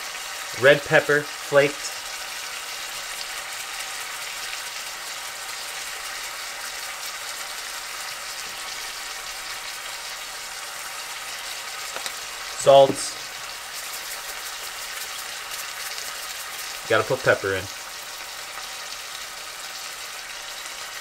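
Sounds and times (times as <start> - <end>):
fish sizzling in a frying pan: 0.0 - 21.0.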